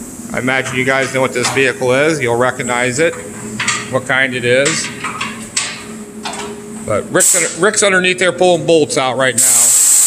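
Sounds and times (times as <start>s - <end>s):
low shop hum: 0.0s - 10.0s
power tool hissing on bolts: 9.4s - 10.0s.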